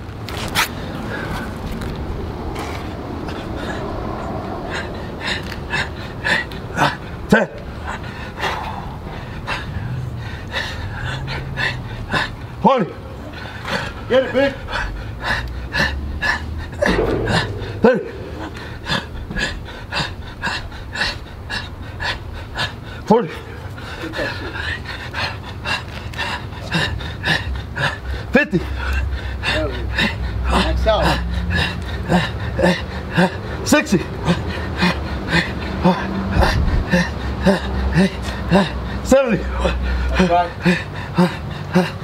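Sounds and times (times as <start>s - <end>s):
man panting hard: 3.1s - 42.0s
man grunting: 16.8s - 20.6s, 29.5s - 31.4s, 35.4s - 42.0s.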